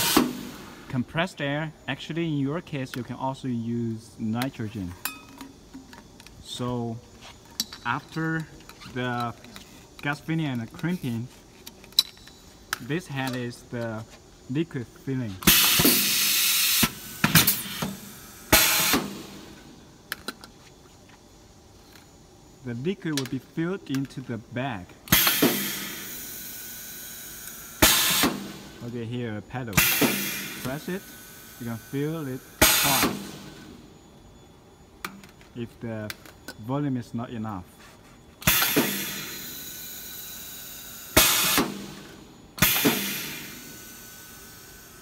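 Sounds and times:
steady low hum: 0.0 - 45.0
machine clunk: 38.4 - 39.2, 42.6 - 43.4.

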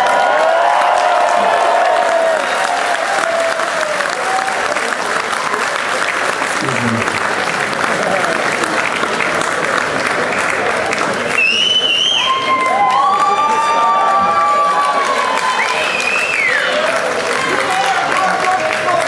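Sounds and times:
crowd cheering and shouting: 0.0 - 4.9, 12.2 - 19.0
audience applauding: 0.0 - 19.0.

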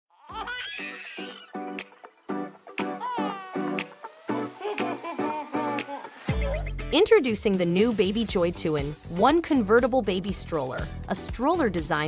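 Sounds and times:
baby giggling: 0.1 - 2.1, 3.0 - 3.6, 4.4 - 6.7.

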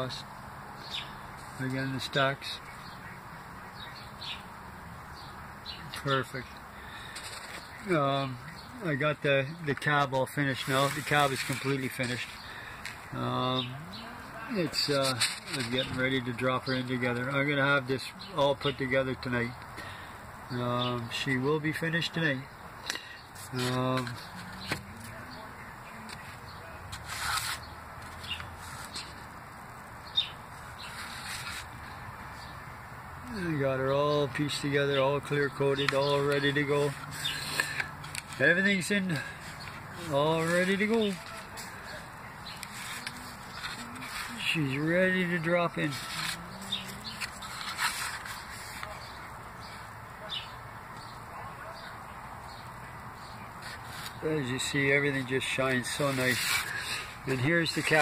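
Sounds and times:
soft plastic rustles: 10.5 - 13.1, 14.2 - 16.4, 35.8 - 44.8, 45.7 - 49.8, 53.6 - 58.0.

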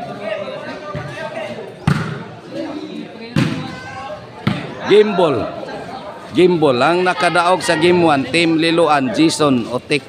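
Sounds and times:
crowd voices: 0.0 - 10.0
ball being hit: 1.8 - 2.3.

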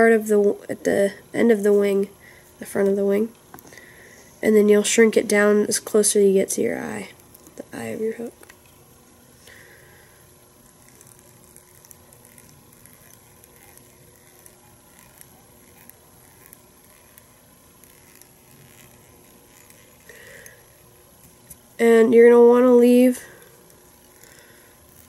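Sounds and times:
room hiss: 0.0 - 25.0
thin steady hum: 0.0 - 25.0
soft ticks and rustles of fingers: 10.6 - 21.6.

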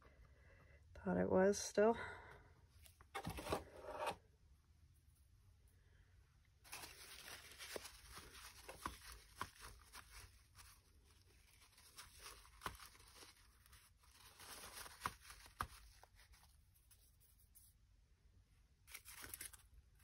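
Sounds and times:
cloth and paper rustling: 6.6 - 17.8.

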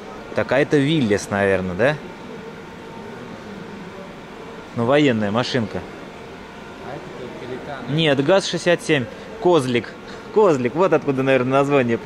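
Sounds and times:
low ventilation drone: 0.0 - 12.0.

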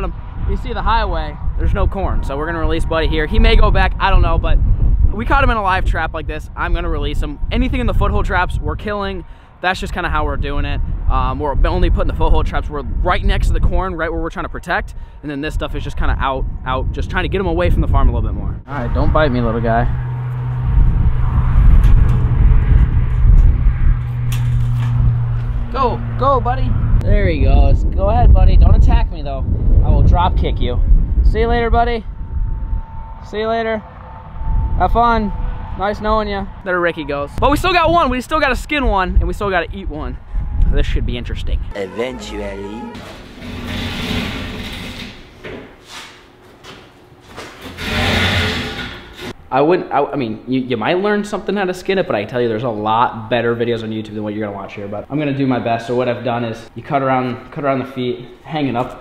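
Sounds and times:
loud low rumble: 15.7 - 41.9
rope hauled over metal track: 47.3 - 49.3.

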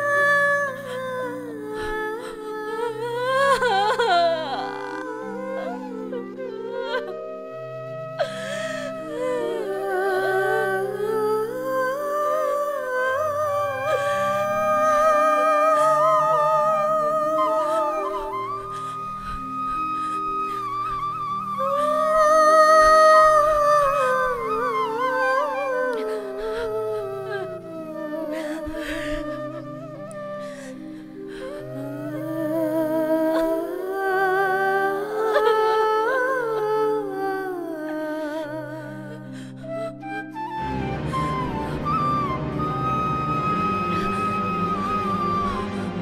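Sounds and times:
wordless humming vocal melody: 0.0 - 46.0.

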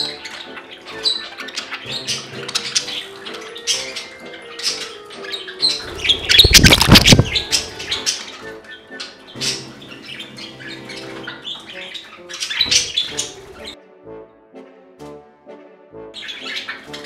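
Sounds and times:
budgerigars chirping: 0.0 - 13.8, 16.2 - 17.0
background music: 0.0 - 17.0
bird wingbeats: 5.6 - 8.2.

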